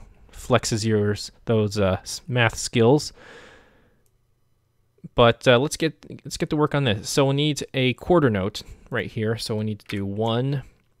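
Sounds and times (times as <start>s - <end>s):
man exhaling: 3.2s - 4.0s.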